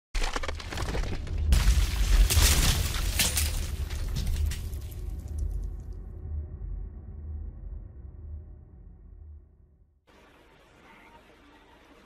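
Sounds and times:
stone slabs cracking and crumbling: 0:00.2 - 0:05.8
deep rumble: 0:00.8 - 0:10.0.

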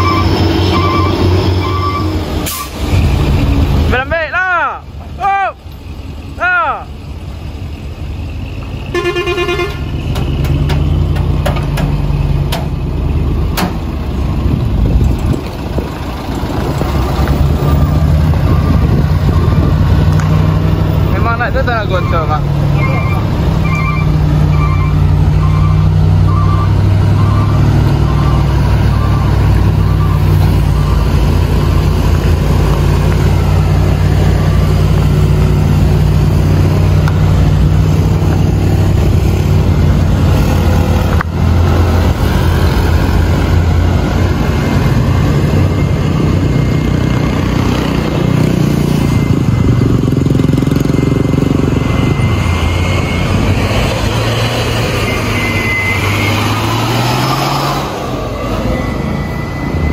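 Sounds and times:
repeating short beep: 0:00.0 - 0:03.7, 0:21.8 - 0:32.4, 0:48.5 - 0:59.9
diesel truck engines running: 0:00.0 - 0:59.9
horn blast: 0:08.9 - 0:09.9.

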